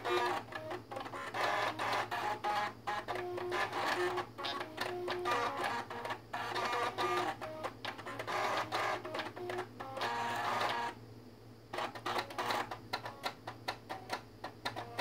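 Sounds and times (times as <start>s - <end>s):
floppy drives buzzing a melody: 0.0s - 11.0s, 11.7s - 15.0s.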